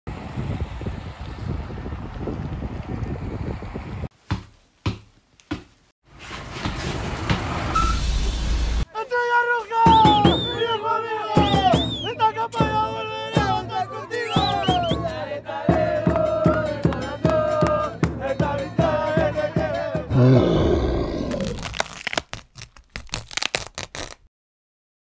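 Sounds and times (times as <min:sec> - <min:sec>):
street traffic: 0:06.1 - 0:08.9
vehicle approaching with hiss: 0:06.2 - 0:08.8
voices singing football chant: 0:09.9 - 0:20.4.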